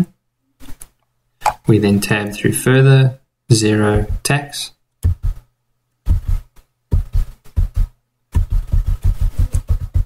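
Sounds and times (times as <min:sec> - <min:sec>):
rapid keystrokes on keyboard: 0:07.0 - 0:10.0.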